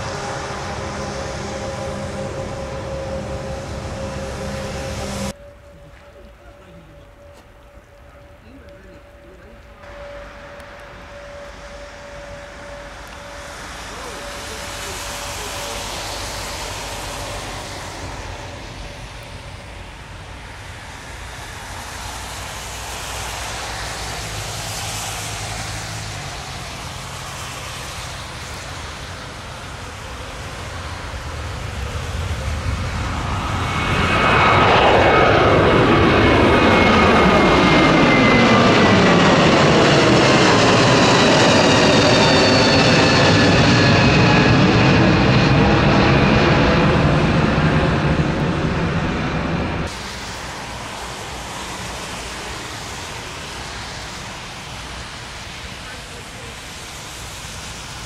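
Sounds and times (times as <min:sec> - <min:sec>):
jet engines roaring: 0:00.0 - 0:58.0.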